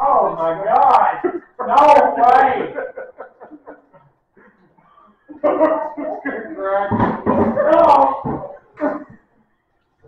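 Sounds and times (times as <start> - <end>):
group of adults laughing: 1.2 - 4.5, 5.3 - 6.6.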